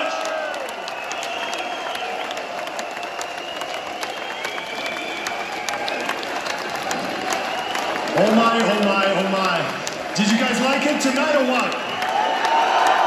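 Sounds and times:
crowd cheering and shouting: 0.0s - 13.0s
crowd clapping: 0.0s - 13.0s.

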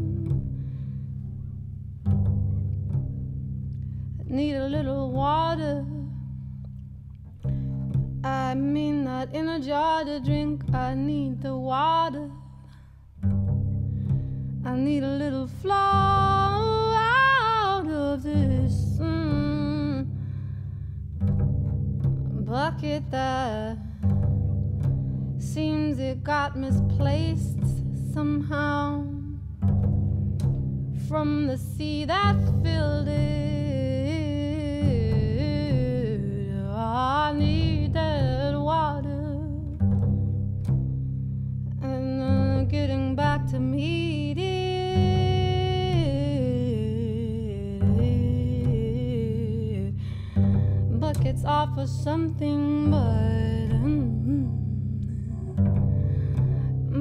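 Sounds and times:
woman singing with vibrato: 0.0s - 0.5s, 4.3s - 6.2s, 8.2s - 12.4s, 14.6s - 20.2s, 22.4s - 23.9s, 25.4s - 29.4s, 31.0s - 39.7s, 41.8s - 55.8s, 56.4s - 57.0s
double bass pizzicato: 0.0s - 57.0s.

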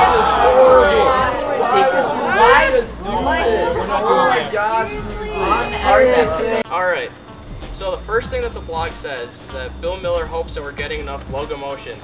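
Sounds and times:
overlapping chatter of voices: 0.0s - 6.9s.

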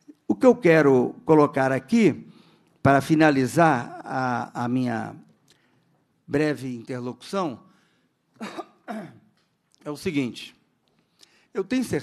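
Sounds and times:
man speaking: 0.1s - 5.3s, 6.3s - 7.7s, 9.8s - 10.6s, 11.5s - 12.0s
man coughing: 8.4s - 9.3s.

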